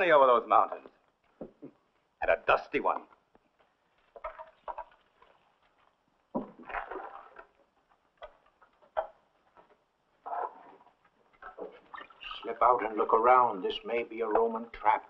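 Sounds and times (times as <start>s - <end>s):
soft rustles: 3.2s - 6.9s.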